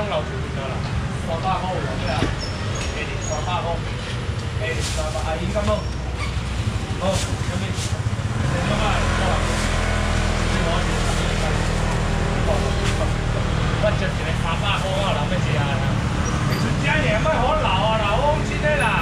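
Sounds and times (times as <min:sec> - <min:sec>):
vehicle engine humming: 0:00.0 - 0:19.0.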